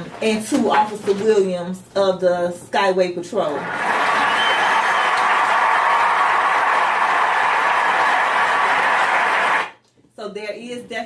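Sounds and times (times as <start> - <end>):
crowd applauding: 3.6 - 9.8.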